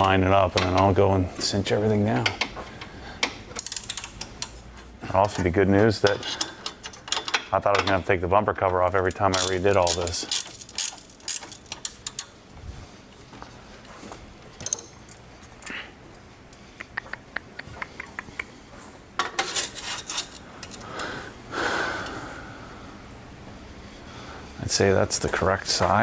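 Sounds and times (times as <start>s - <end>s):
rustling noises: 9.0s - 20.9s.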